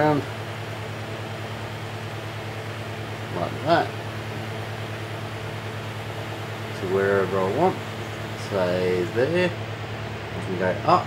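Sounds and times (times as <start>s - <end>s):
motors humming with faint pulse: 0.0s - 11.0s.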